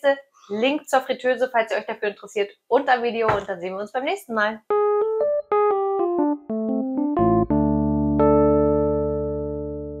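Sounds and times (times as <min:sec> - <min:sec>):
piano chord ringing: 0:04.7 - 0:10.0.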